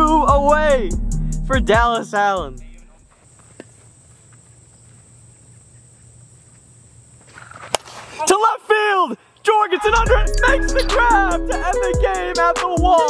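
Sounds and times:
excited commentary: 0:08.2 - 0:13.0.

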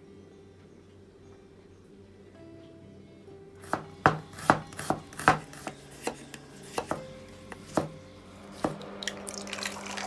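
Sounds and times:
knife knocking on cutting board: 0:03.6 - 0:05.4.

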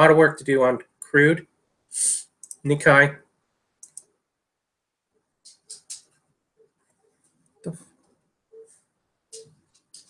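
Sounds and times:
computer mouse clicks: 0:03.8 - 0:04.1, 0:05.4 - 0:06.2, 0:08.6 - 0:10.0.

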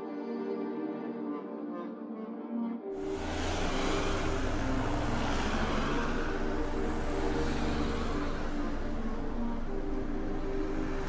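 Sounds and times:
sustained music notes: 0:00.0 - 0:11.0
vehicle-like rumble: 0:03.0 - 0:11.0.

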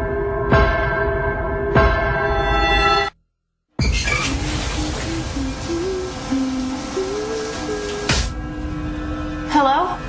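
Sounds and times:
eerie slow low melody: 0:00.0 - 0:03.2.

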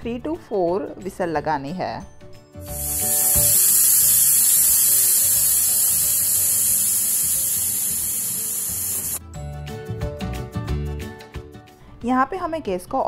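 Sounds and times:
steam hissing from pressure cooker: 0:02.6 - 0:09.2.

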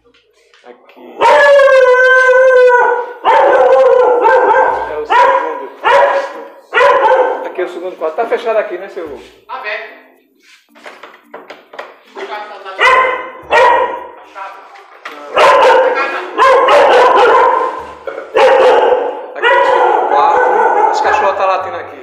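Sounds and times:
dog barking loudly: 0:01.2 - 0:07.5, 0:12.8 - 0:14.2, 0:15.3 - 0:21.4.

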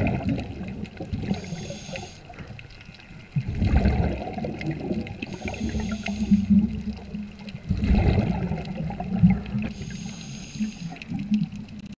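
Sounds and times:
muffled underwater rumble: 0:00.0 - 0:12.0
faint high hiss: 0:01.2 - 0:02.6, 0:05.2 - 0:07.2, 0:09.6 - 0:11.1.

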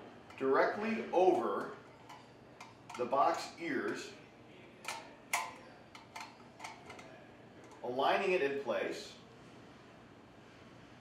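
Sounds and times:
metal ring clicking onto metal box: 0:04.8 - 0:07.8.

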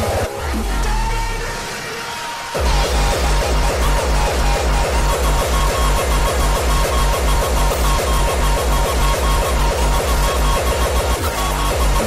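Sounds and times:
fast electronic dance music: 0:00.0 - 0:12.0.

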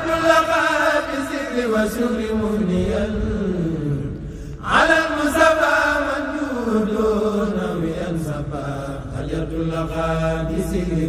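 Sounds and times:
devotional chanting over loudspeakers: 0:00.0 - 0:11.0.

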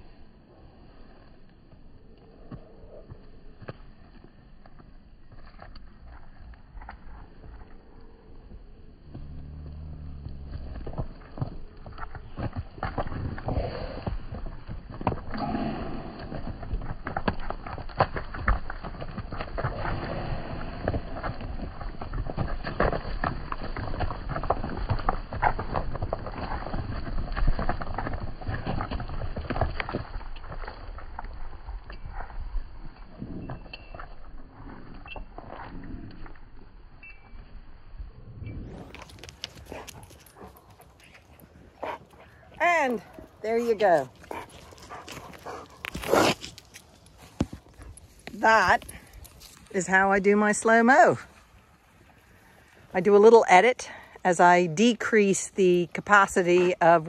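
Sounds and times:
sheep hooves running on dirt: 0:00.2 - 0:57.0.

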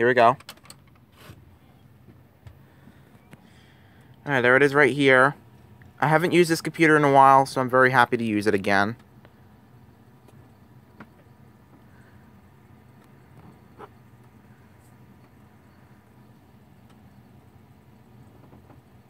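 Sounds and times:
desktop computer hum: 0:00.0 - 0:19.0.

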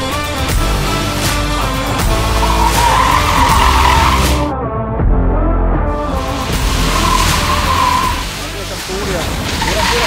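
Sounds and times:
background music: 0:00.0 - 0:10.0
car tyres squealing: 0:02.1 - 0:04.5, 0:06.5 - 0:08.6, 0:09.3 - 0:10.0.

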